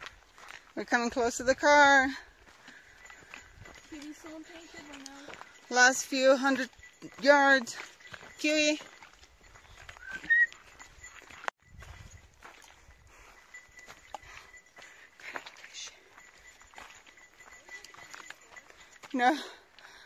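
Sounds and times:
footsteps on dirt trail: 0:00.0 - 0:20.0.

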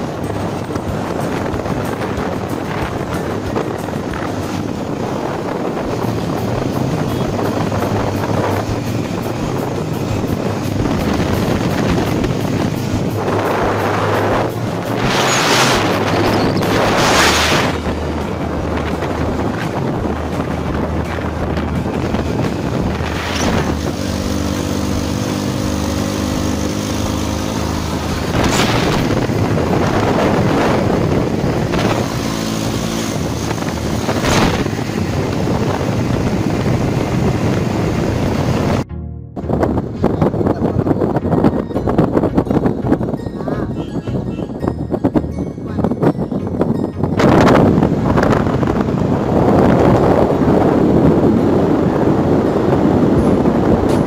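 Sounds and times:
motorcycle engine drone: 0:00.0 - 0:54.0
wind rushing: 0:00.0 - 0:54.0.

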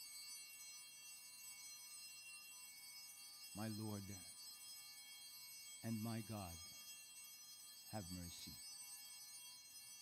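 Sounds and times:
man talking: 0:03.6 - 0:04.2, 0:05.9 - 0:06.6, 0:08.0 - 0:08.5.

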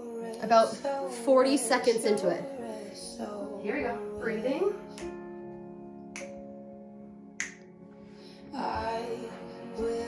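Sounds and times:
slow quiet music: 0:00.0 - 0:10.0
sharp snapping clicks: 0:06.1 - 0:06.4, 0:07.4 - 0:07.7.

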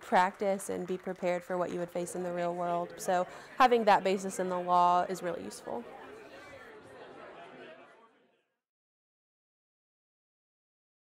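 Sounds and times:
faint chatter of people: 0:00.1 - 0:08.6.

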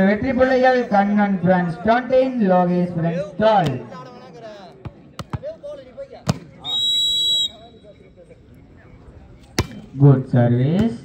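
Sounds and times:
referee's whistle: 0:06.6 - 0:08.0
volleyball being struck: 0:09.6 - 0:09.8.

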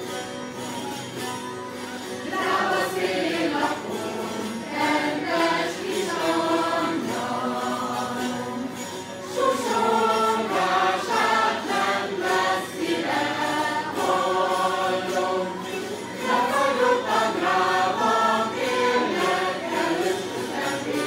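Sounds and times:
mixed choir singing folk song: 0:02.0 - 0:21.0.

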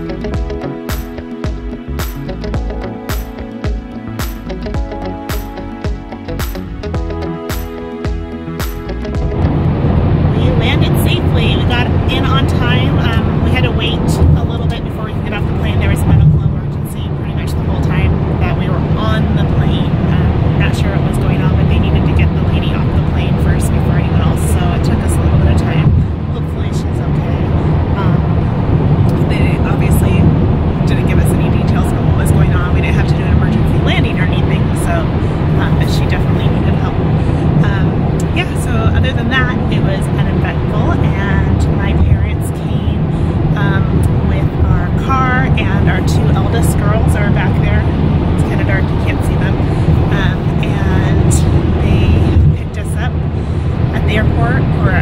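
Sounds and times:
vehicle rumble from inside cabin: 0:09.0 - 0:55.0
indistinct voices: 0:09.2 - 0:55.0.

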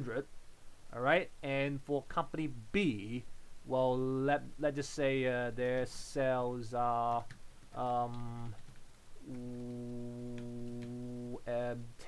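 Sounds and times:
keyboard clicks: 0:07.1 - 0:11.1
person saying uhh: 0:07.8 - 0:08.6, 0:09.2 - 0:11.9.

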